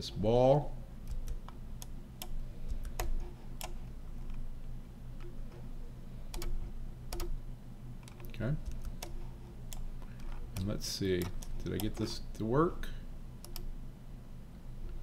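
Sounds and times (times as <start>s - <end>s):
low steady hum: 0.0s - 15.0s
computer mouse clicks: 1.0s - 4.4s, 6.3s - 7.4s, 8.0s - 12.4s, 13.4s - 13.7s.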